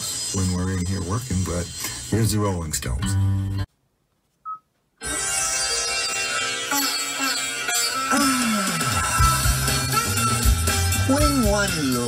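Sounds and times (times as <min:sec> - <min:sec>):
touchscreen beep: 0:04.4 - 0:04.7
music from car stereo: 0:05.0 - 0:12.0.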